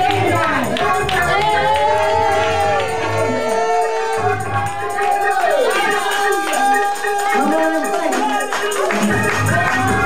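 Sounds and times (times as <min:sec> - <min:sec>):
congregation shouting and singing: 0:00.0 - 0:10.0
music with low beat: 0:00.0 - 0:10.0.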